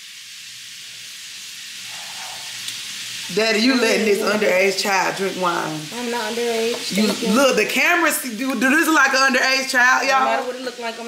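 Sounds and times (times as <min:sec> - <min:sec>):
food frying in hot oil: 0:00.0 - 0:11.0.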